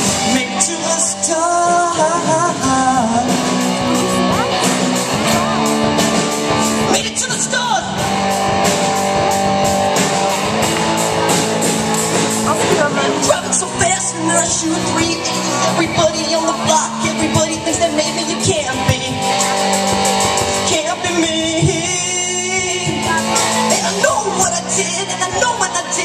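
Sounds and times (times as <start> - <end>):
electric guitars holding chords: 0.0 - 26.0
rock band playing: 0.0 - 26.0
steady drum beat: 0.0 - 26.0.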